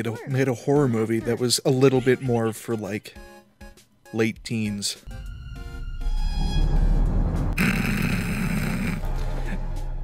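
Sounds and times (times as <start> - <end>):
harsh dense swell: 5.1 - 9.0
low rumbling drone: 5.1 - 10.0.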